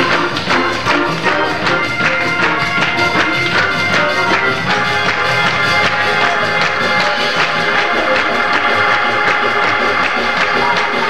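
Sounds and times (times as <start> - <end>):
congregation clapping: 0.0 - 11.0.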